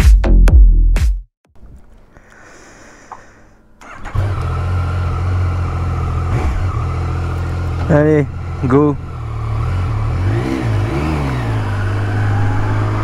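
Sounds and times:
motorcycle engine idling: 3.8s - 10.2s.

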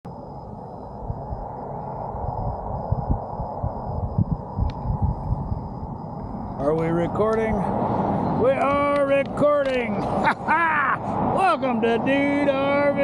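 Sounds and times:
wind buffeting microphone: 0.1s - 13.0s
click: 4.6s - 4.8s.

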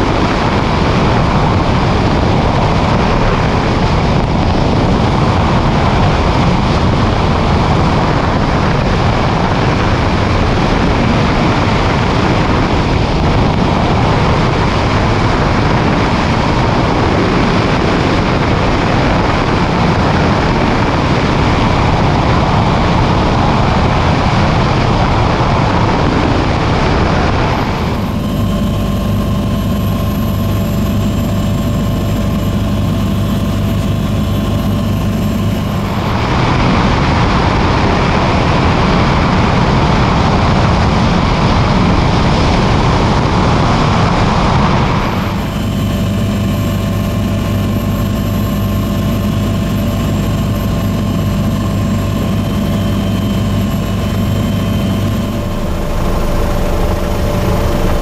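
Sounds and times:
loud rushing noise: 0.0s - 45.8s, 52.0s - 58.0s
faint high whine: 0.0s - 58.0s
helicopter rotor and engine drone: 0.0s - 58.0s.

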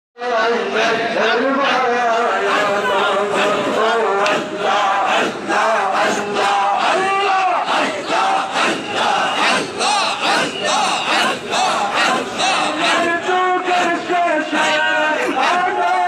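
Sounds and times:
men chanting in unison: 0.2s - 16.0s.

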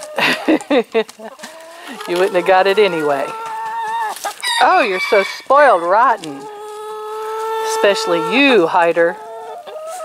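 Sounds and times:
hens clucking: 0.0s - 10.0s
woman laughing: 0.1s - 1.6s.

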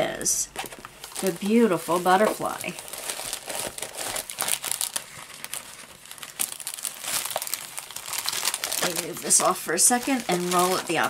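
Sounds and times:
plastic film crinkling: 0.1s - 11.0s.

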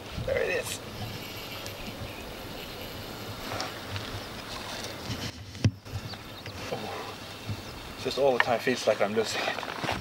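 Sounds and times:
lake water: 0.0s - 10.0s
wind: 0.0s - 10.0s.

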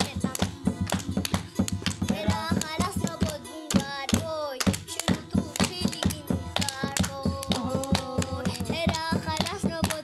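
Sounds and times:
boy singing a folk song: 0.0s - 10.0s
hand claps: 0.0s - 10.0s.

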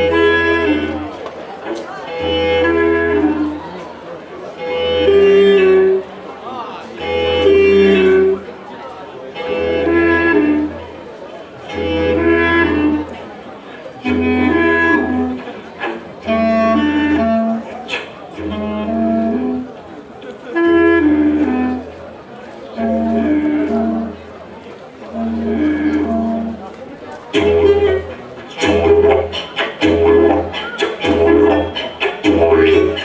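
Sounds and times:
clarinet notes: 0.0s - 3.8s, 4.4s - 6.2s, 6.9s - 8.6s, 9.3s - 11.0s, 11.6s - 33.0s
didgeridoo drone: 7.0s - 8.5s, 25.1s - 26.7s, 27.3s - 33.0s.

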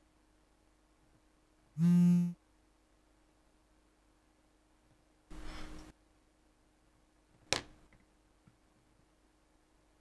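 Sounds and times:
phone vibrating buzz: 1.8s - 2.4s.

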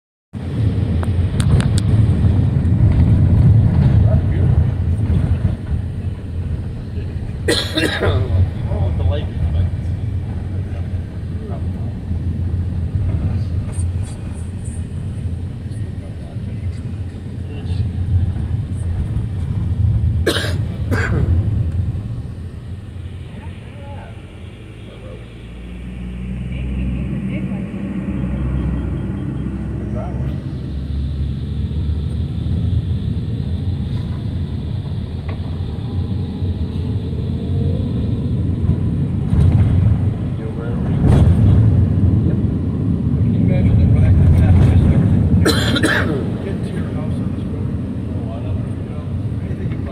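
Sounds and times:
car driving on road: 0.4s - 49.9s.

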